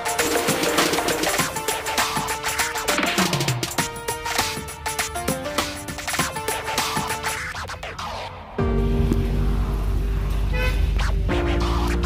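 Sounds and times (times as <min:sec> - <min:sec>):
long car horn honk: 0:10.5 - 0:10.9
short higher car horn toot: 0:10.5 - 0:10.9.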